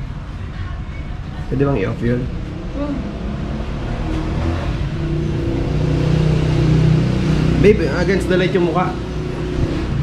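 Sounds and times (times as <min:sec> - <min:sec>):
vehicle engine humming: 0:01.2 - 0:10.0.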